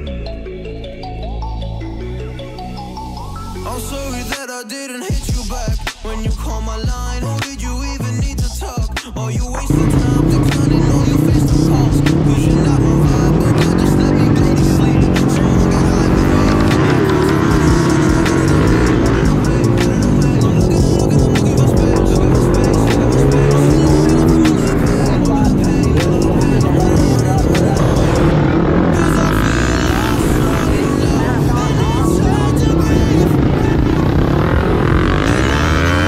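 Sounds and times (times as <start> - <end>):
music: 0.0 - 36.0
motorcycle engine revving: 9.6 - 36.0.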